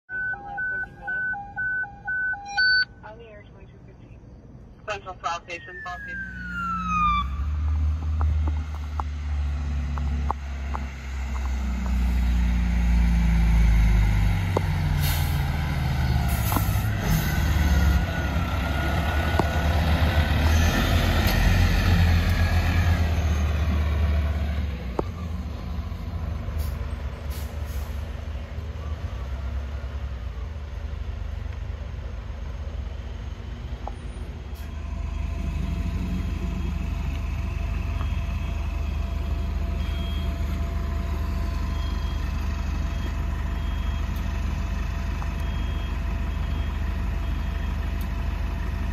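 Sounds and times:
diesel engine rumble: 0.1s - 48.9s
diesel engine idling: 7.9s - 48.9s
air brake hisses: 15.0s - 15.5s.

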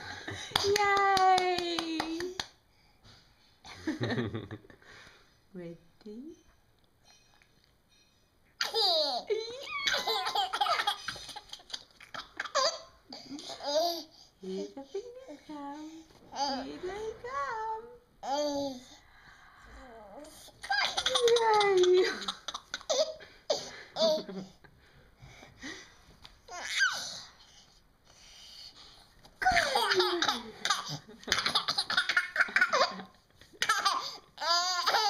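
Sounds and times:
baby laughing: 8.6s - 14.0s, 20.6s - 24.6s, 29.4s - 35.0s.

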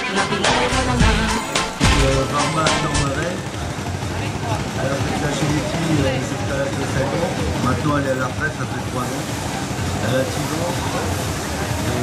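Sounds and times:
indistinct voices talking: 0.0s - 12.0s
steady background noise: 0.0s - 12.0s.

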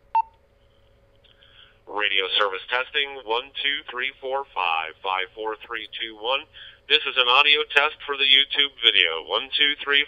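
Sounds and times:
faint radio hiss: 0.7s - 10.0s
recorded voice from radio speaker: 1.9s - 10.0s.

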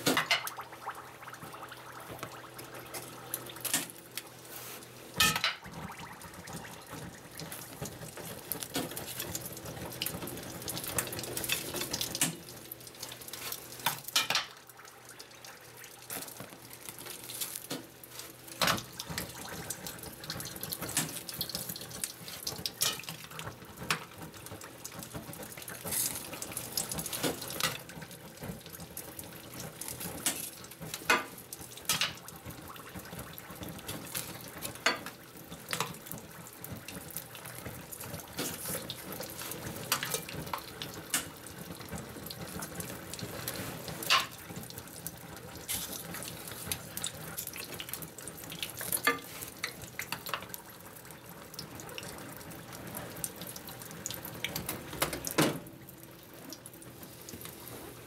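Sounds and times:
oil hissing and crackling: 0.0s - 58.0s.

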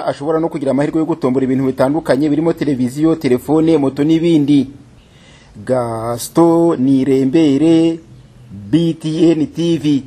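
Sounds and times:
man chanting long syllables: 5.6s - 10.0s.

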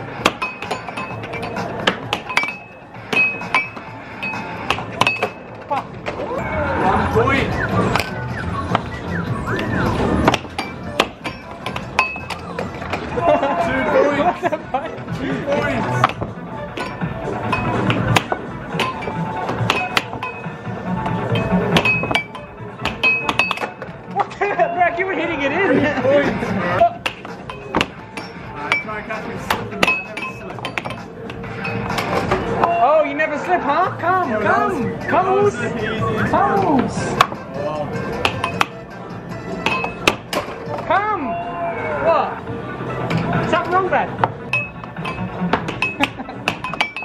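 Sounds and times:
music: 0.0s - 47.0s
air hockey puck and mallets clacking: 0.1s - 6.3s, 7.9s - 8.9s, 9.6s - 13.2s, 15.8s - 24.6s, 26.8s - 32.9s, 36.6s - 37.4s, 38.2s - 38.8s, 39.6s - 41.0s, 43.0s - 47.0s
voices: 23.7s - 38.7s, 40.7s - 46.2s.

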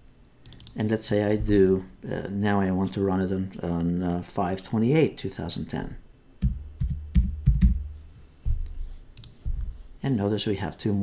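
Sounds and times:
typing on computer keyboard: 0.4s - 0.8s.

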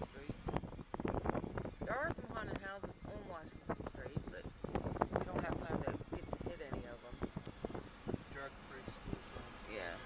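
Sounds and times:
car rumbling on road: 0.0s - 10.0s.

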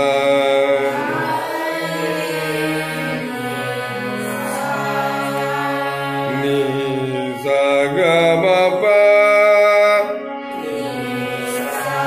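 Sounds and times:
harmonium: 0.0s - 12.0s.

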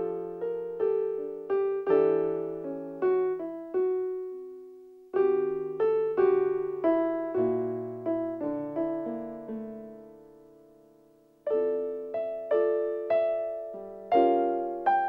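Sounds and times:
piano playing a slow waltz: 0.0s - 15.0s.

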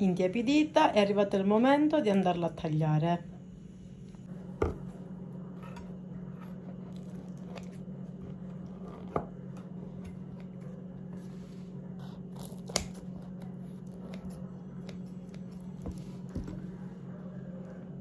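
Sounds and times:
steady low hum: 0.0s - 18.0s
scissors cutting crusty bread: 5.5s - 11.2s, 11.8s - 16.7s.

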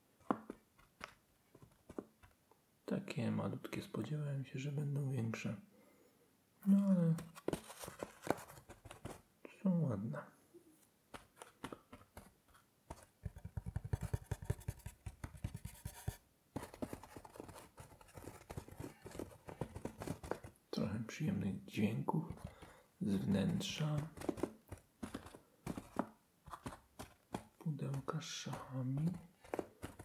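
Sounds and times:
fingertips scratching wooden pieces: 11.1s - 20.6s, 22.2s - 30.0s.

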